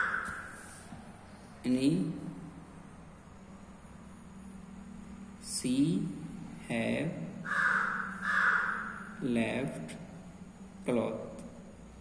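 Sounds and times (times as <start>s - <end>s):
bird cawing: 0.0s - 0.6s, 7.4s - 9.2s.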